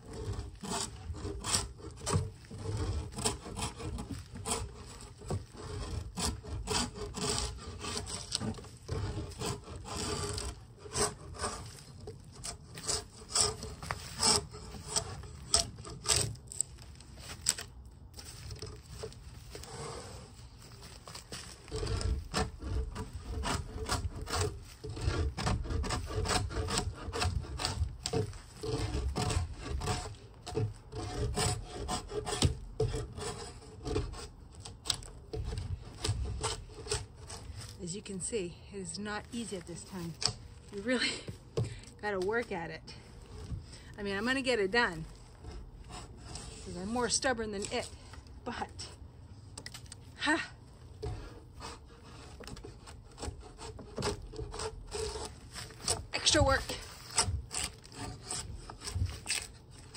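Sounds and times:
drawknife scraping bark from log: 0.0s - 59.9s.

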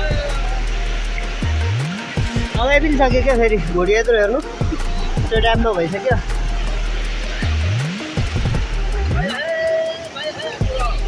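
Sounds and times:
man's voice: 0.0s - 7.8s, 8.8s - 11.0s
strong low hum: 0.0s - 9.2s
background music: 0.0s - 11.0s
rushing outdoor noise: 0.0s - 11.0s.

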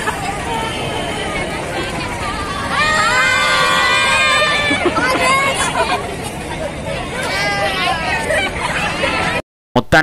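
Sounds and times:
women laughing: 4.0s - 9.4s.

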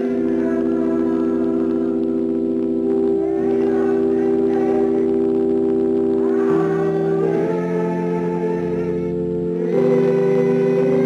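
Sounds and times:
organ chords: 0.0s - 11.0s.

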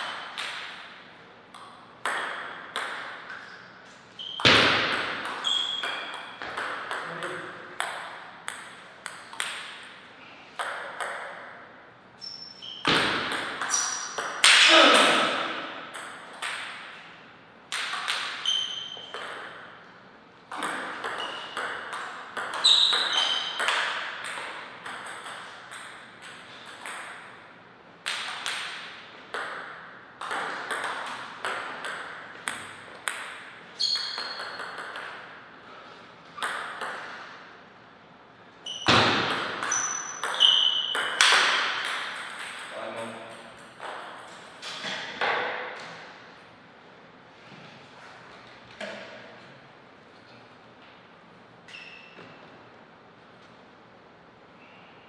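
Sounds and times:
table tennis ball pinging: 0.0s - 10.0s, 10.6s - 11.6s, 12.6s - 14.7s, 15.3s - 17.0s, 17.7s - 19.8s, 20.5s - 27.4s, 28.0s - 35.4s, 36.4s - 37.3s, 38.6s - 44.4s.

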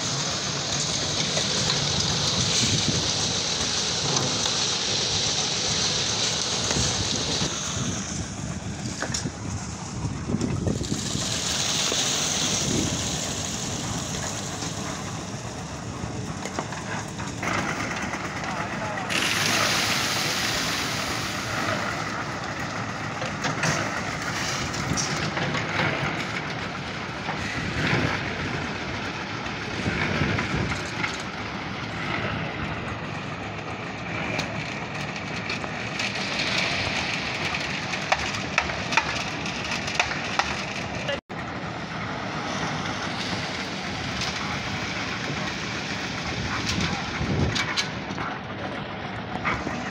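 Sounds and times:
concrete mixer running: 0.0s - 49.9s
workers' voices: 0.0s - 49.9s.

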